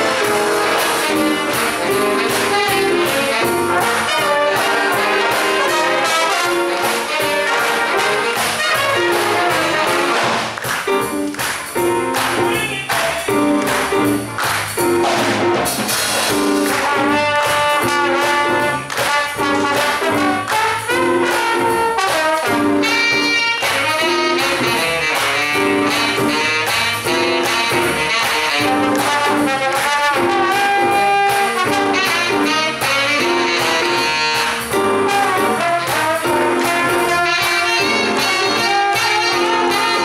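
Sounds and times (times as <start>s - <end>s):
jazz big band playing: 0.0s - 40.0s.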